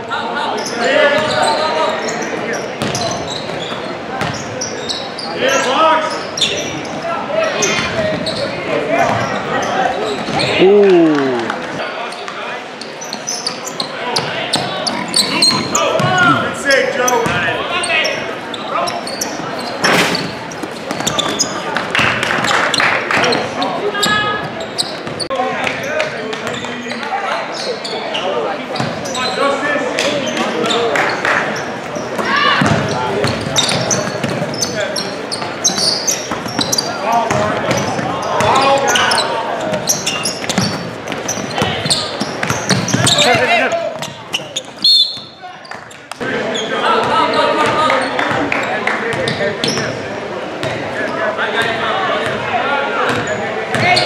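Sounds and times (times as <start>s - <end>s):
people calling out: 10.4s - 11.8s.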